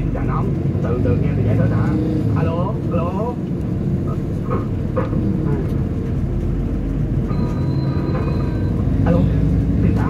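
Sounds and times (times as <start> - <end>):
road rumble inside vehicle: 0.0 - 10.0.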